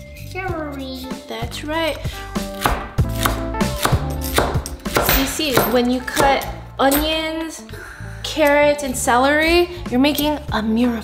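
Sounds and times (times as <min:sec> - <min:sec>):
knife chopping on cutting board: 0:02.5 - 0:06.4.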